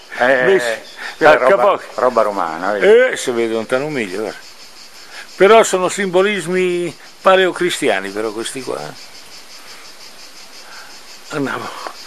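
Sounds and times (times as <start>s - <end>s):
faint background hiss: 0.0s - 12.0s
insects chirping: 0.0s - 12.0s.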